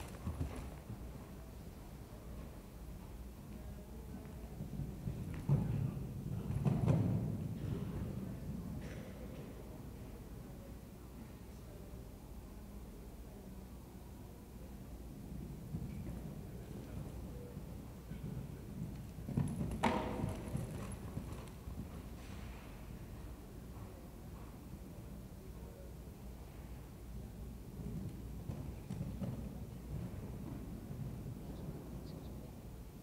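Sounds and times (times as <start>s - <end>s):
horse hooves thudding on sand: 18.2s - 22.8s.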